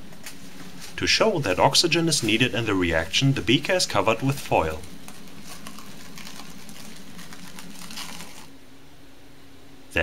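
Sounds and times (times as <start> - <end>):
plastic film crinkling: 1.4 - 8.5.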